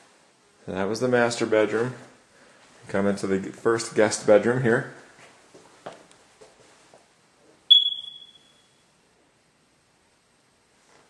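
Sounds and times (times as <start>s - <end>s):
smoke detector chirp: 7.7s - 8.8s.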